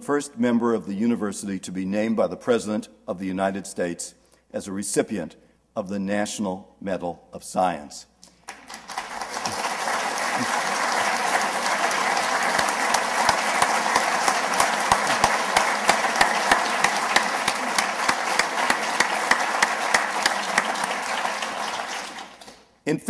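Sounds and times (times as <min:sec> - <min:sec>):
single claps: 0:08.3 - 0:22.7
audience applauding: 0:08.4 - 0:22.7.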